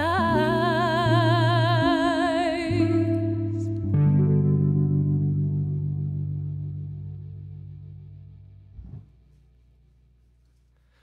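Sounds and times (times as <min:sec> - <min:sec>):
electric keyboard chord ringing: 0:00.0 - 0:08.7.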